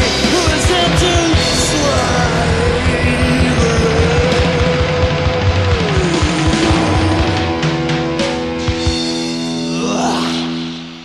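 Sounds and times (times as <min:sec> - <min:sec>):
drum hits: 0:00.0 - 0:09.3
bass guitar: 0:00.0 - 0:11.0
electric guitar: 0:00.0 - 0:11.0
post-punk rock song: 0:00.0 - 0:11.0.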